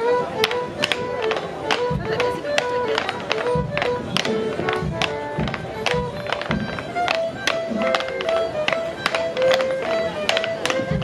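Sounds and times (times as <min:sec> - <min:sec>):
lively folk dance tune: 0:00.0 - 0:11.0
wooden clogs clacking on board: 0:00.4 - 0:11.0.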